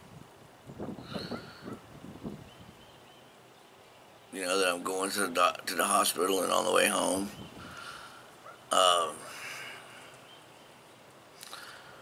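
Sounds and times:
faint animal calls: 0:01.0 - 0:01.9.

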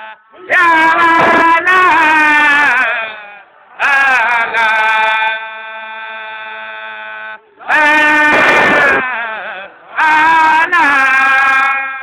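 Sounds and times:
men chanting: 0:00.0 - 0:12.0
rough rush of noise: 0:07.7 - 0:09.9.

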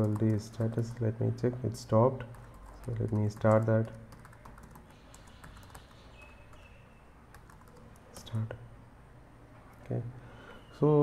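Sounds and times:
typing on computer keyboard: 0:00.0 - 0:01.0, 0:02.2 - 0:06.7, 0:07.3 - 0:08.3.

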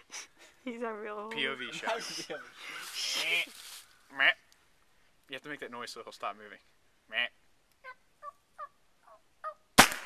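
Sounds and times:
rifle shot: 0:09.8 - 0:10.0.

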